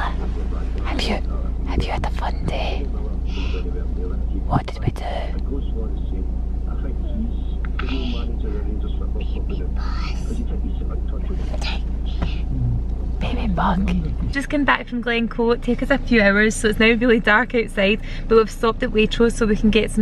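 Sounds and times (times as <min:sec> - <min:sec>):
car idling rumble: 0:00.0 - 0:20.0
toddler's quiet voice: 0:06.8 - 0:12.8.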